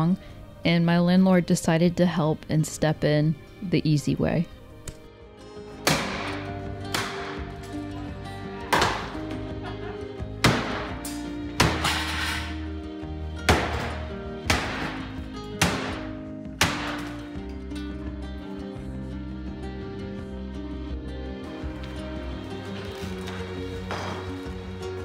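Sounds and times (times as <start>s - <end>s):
background music: 0.0s - 25.0s
sledgehammer smashing wood: 10.4s - 11.0s, 11.6s - 12.2s, 13.5s - 17.2s.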